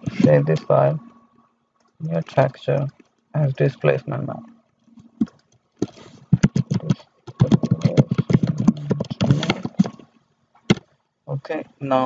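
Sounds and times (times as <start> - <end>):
computer keyboard typing: 5.0 - 10.0.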